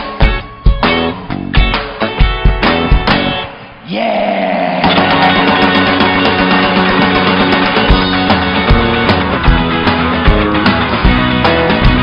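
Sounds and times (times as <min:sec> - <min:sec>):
rock band playing: 0:00.0 - 0:03.8, 0:04.8 - 0:12.0.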